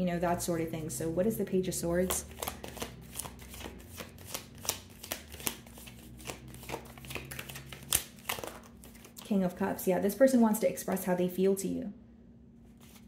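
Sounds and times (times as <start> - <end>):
cards being shuffled: 1.8 - 9.2, 12.7 - 13.0.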